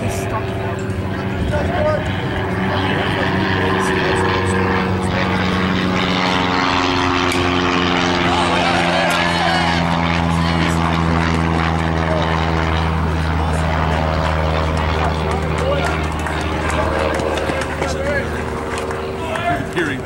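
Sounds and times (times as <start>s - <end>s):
faint voices: 0.0s - 20.0s
loud engine drone: 0.0s - 20.0s.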